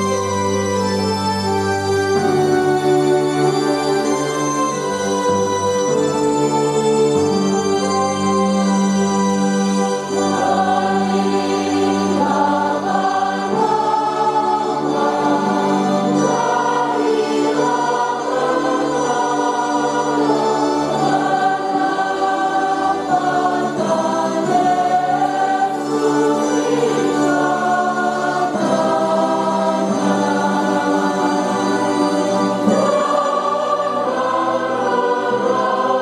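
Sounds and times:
church choir singing a hymn: 0.0s - 36.0s
electronic organ sustained notes: 0.0s - 36.0s.

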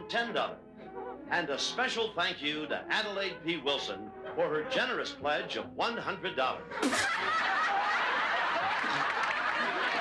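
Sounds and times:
audience laughing: 6.7s - 10.0s.

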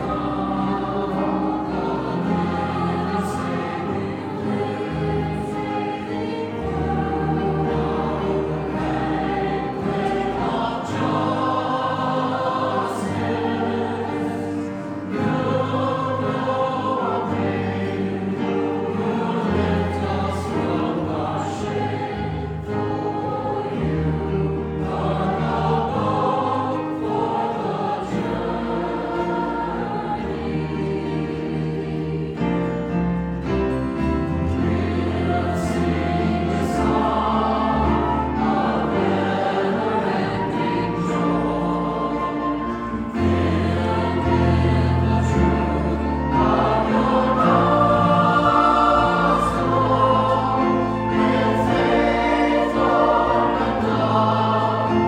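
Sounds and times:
mixed choir singing: 0.0s - 55.0s
piano: 0.0s - 55.0s.

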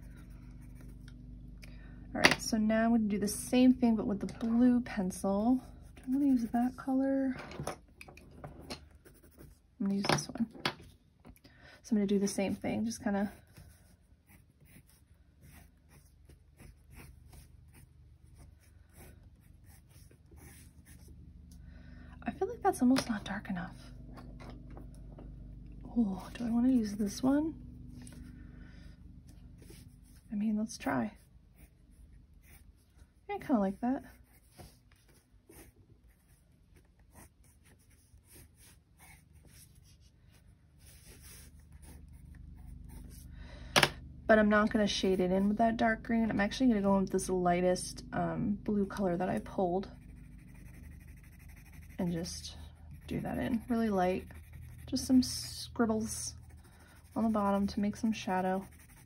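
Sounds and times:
colored pencil scratching on paper: 0.0s - 1.1s, 5.2s - 7.2s, 8.9s - 9.7s, 12.1s - 21.1s, 29.6s - 43.3s, 49.0s - 59.0s.

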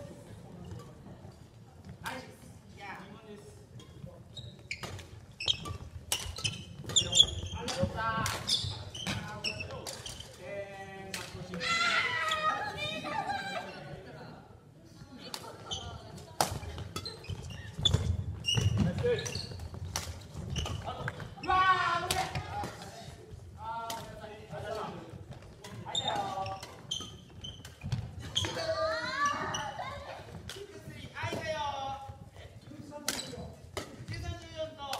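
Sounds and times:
shoe squeaks: 3.9s - 10.4s, 15.6s - 21.6s, 25.8s - 30.4s
rackets striking shuttlecock: 4.8s - 9.2s, 33.0s - 34.3s.

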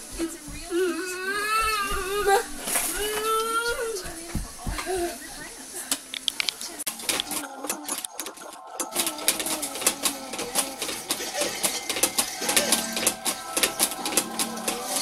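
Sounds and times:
baby vocal sounds: 0.2s - 5.2s
plastic toys clicking and rattling: 5.9s - 15.0s.

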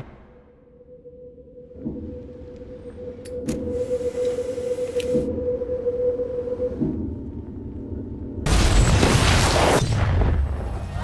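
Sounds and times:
soft low pulses: 0.0s - 8.5s.

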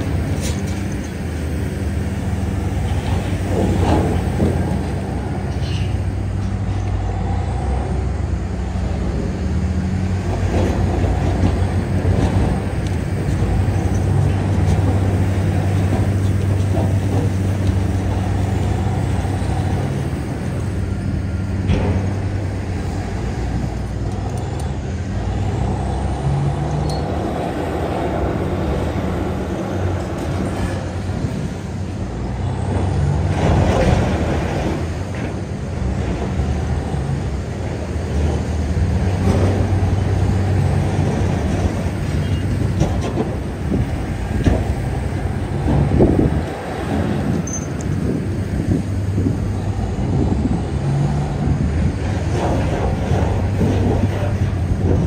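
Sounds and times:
wheel loader diesel engine: 0.0s - 55.0s.

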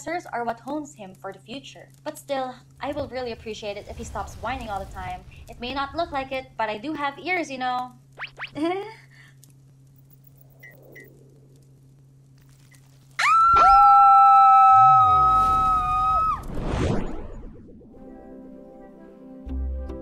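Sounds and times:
cartoon voices screaming: 13.2s - 16.4s.

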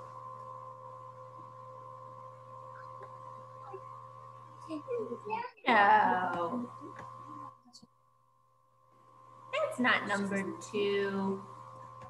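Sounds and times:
faint hum of held tones: 0.0s - 12.0s.

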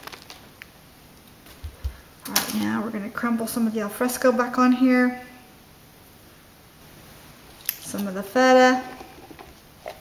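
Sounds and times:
woman talking: 2.2s - 5.4s, 7.8s - 9.1s.

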